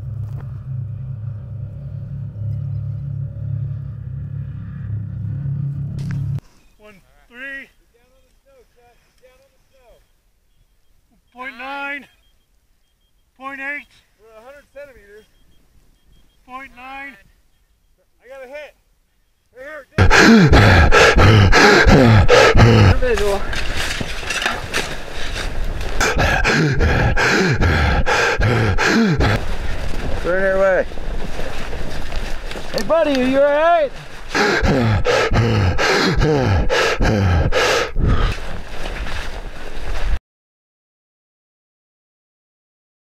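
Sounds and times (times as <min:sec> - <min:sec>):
shovels digging through snow: 0:23.0 - 0:26.0.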